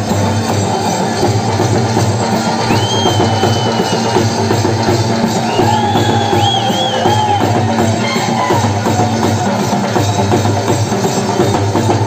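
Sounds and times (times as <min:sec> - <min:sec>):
fast driving drum beat: 0:00.0 - 0:12.0
loud folk music: 0:00.0 - 0:12.0.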